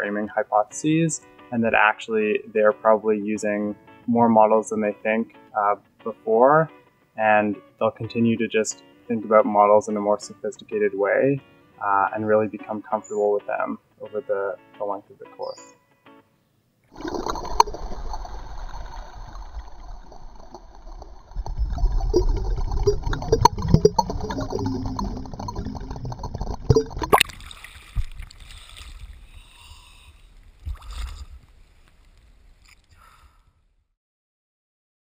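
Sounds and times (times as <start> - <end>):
underwater bubbling and rushing: 16.9 - 29.5, 30.2 - 32.6.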